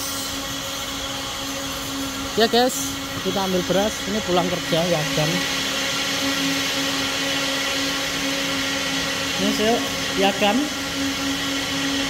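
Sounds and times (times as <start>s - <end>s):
machine motor humming: 0.0s - 12.0s.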